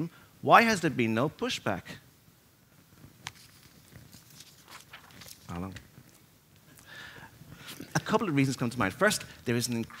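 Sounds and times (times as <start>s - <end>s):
clicks and rustling near microphone: 2.9s - 6.7s.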